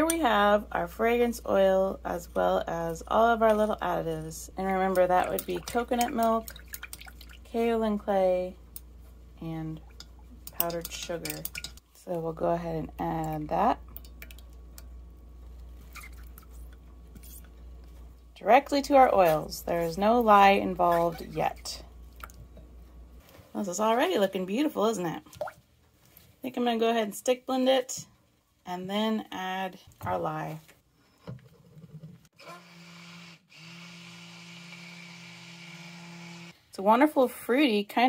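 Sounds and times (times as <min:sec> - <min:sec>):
low steady hum: 0:00.0 - 0:32.3
stick blender motor hum: 0:32.4 - 0:36.6.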